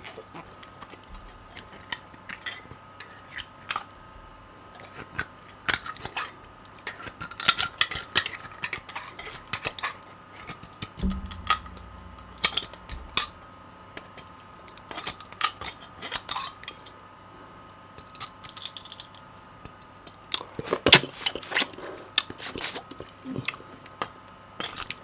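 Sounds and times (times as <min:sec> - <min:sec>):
dull low thud: 0:11.0 - 0:13.6.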